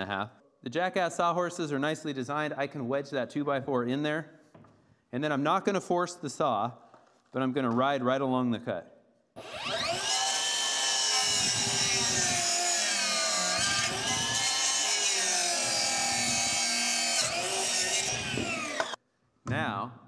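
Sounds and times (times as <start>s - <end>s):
circular saw cutting wood: 9.4s - 19.0s.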